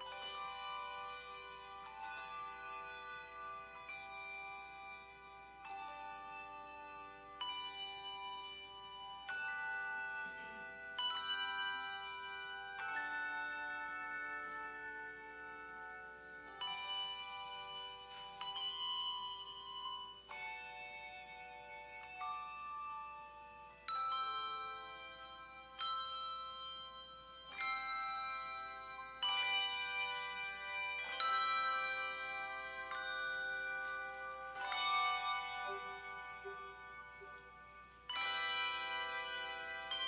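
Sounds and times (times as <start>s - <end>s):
handbell choir ringing chords: 0.0s - 40.0s.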